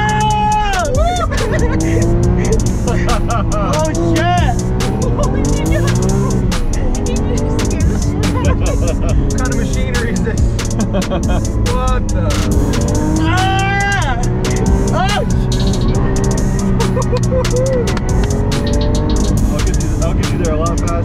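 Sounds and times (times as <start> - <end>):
car engine accelerating and upshifting: 0.0 - 21.0.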